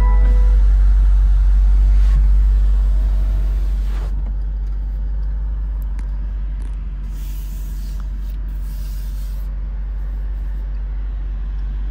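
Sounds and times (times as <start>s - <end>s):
car engine idling: 0.0s - 11.9s.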